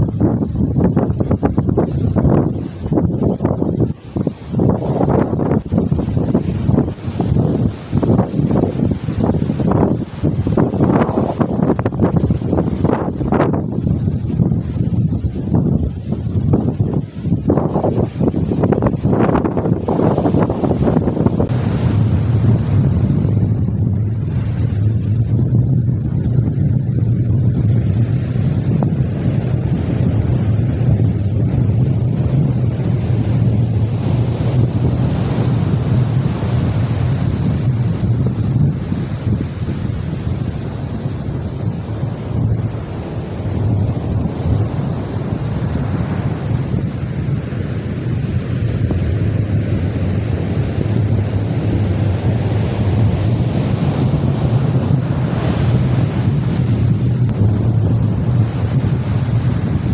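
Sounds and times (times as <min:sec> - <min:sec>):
surf breaking on beach: 0:00.0 - 0:59.9
wind buffeting microphone: 0:00.0 - 0:59.9.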